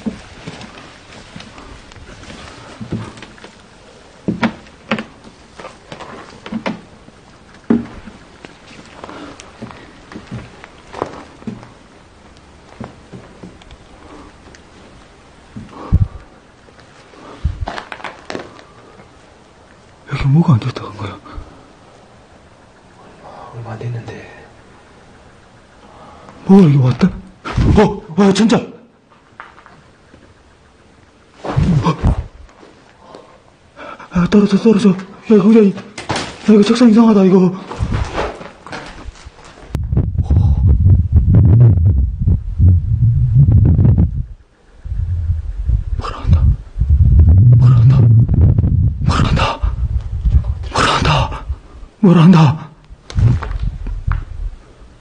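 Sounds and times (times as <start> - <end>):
footsteps on concrete floor: 7.7 - 11.8
wind buffeting microphone: 15.6 - 16.4, 17.4 - 18.0, 39.7 - 52.0, 52.9 - 55.0.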